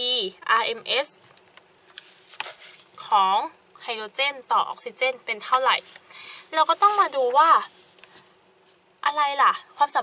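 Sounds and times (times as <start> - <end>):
woman speaking: 0.0 - 1.2, 3.0 - 7.8, 9.0 - 10.0
paper rustling on a desk: 1.2 - 3.1, 5.7 - 8.8.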